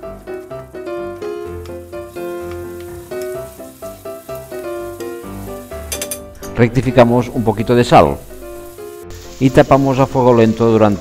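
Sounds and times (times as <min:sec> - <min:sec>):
vegetables sizzling in a pan: 0:00.0 - 0:06.2, 0:07.0 - 0:11.0.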